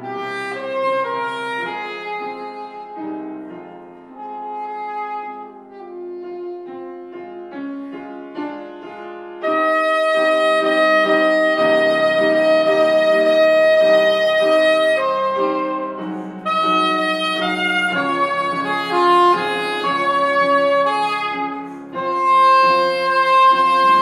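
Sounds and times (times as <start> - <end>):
piano chords: 0.0 - 24.0
soprano saxophone melody: 0.0 - 24.0.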